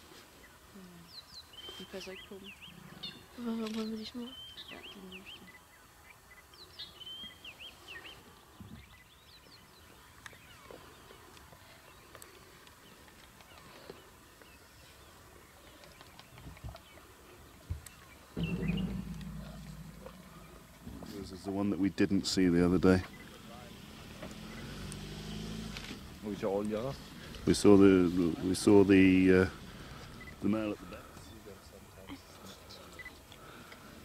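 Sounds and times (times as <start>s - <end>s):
small birds chirping: 0.4s - 20.9s, 23.0s - 33.9s.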